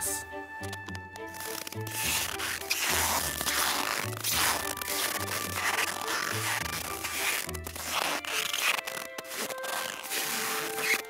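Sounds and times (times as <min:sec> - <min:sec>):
boots squeaking in snow: 0:01.3 - 0:11.0.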